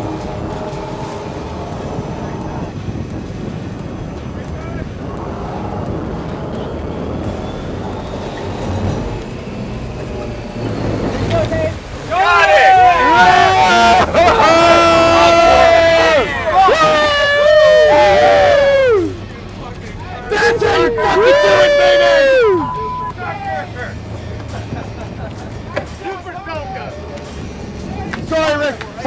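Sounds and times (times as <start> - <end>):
boat engines droning: 0.0 - 29.0
rushing wind and water: 0.0 - 29.0
men whooping and yelling: 3.5 - 29.0.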